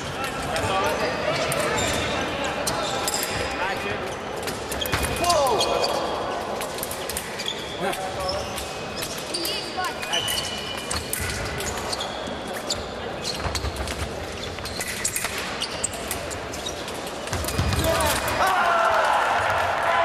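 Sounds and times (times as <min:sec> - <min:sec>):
shoe squeaks: 0:00.8 - 0:06.2, 0:07.0 - 0:18.1.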